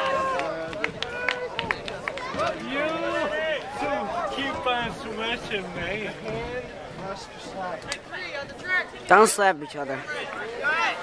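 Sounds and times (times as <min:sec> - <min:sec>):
spectator chatter: 0:00.0 - 0:11.0.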